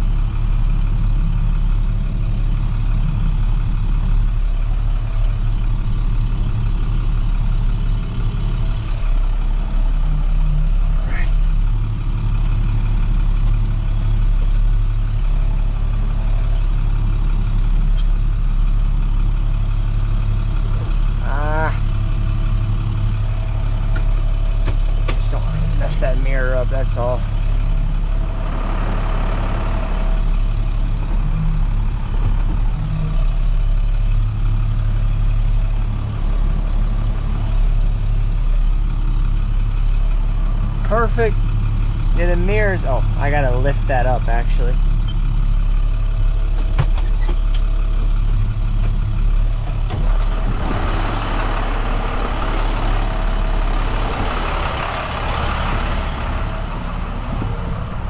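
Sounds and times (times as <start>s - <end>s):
truck engine humming: 0.0s - 58.0s.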